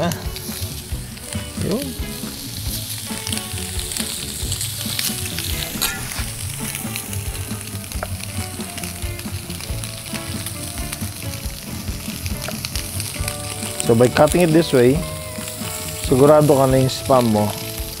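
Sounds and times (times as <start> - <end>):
meat sizzling in grill pan: 0.0 - 18.0.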